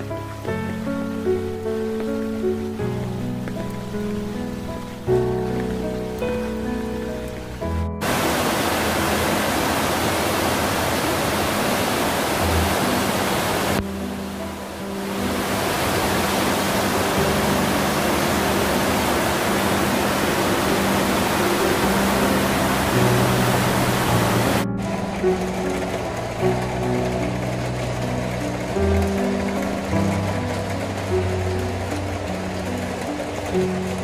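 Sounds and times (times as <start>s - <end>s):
rush of stream water: 0.0s - 34.0s
soft background music: 0.0s - 34.0s.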